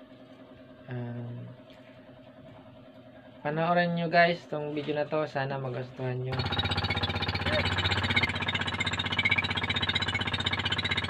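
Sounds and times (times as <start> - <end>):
small boat motor running: 6.0 - 11.0.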